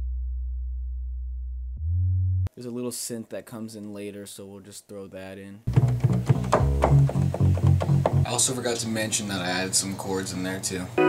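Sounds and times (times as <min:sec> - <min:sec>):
deep synth bass notes: 0:00.0 - 0:02.5, 0:05.7 - 0:08.3.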